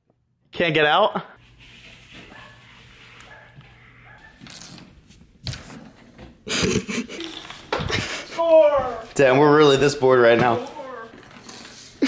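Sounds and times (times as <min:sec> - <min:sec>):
breathy laughter: 0:06.4 - 0:08.4.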